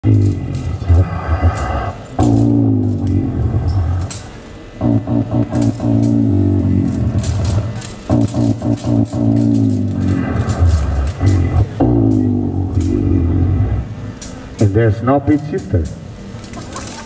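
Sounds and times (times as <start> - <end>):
beatboxing into microphone: 0.0 - 14.0
deep synth bass line: 0.0 - 14.1.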